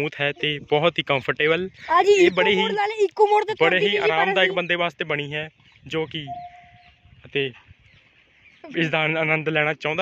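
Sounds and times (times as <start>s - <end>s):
scooter beep: 6.3s - 6.8s.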